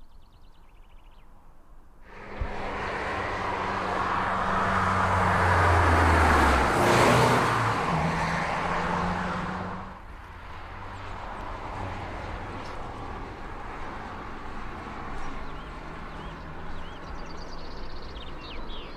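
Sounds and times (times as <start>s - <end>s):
car driving past: 2.0s - 18.8s.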